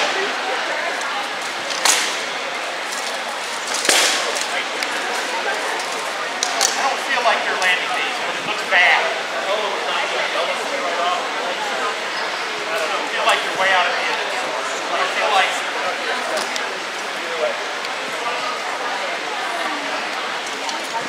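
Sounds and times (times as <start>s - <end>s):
crowd chatter: 0.0s - 21.0s.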